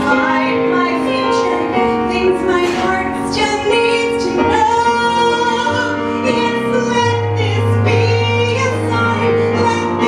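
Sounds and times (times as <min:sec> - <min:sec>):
electric keyboard piano: 0:00.0 - 0:10.0
woman singing a ballad: 0:00.0 - 0:10.0.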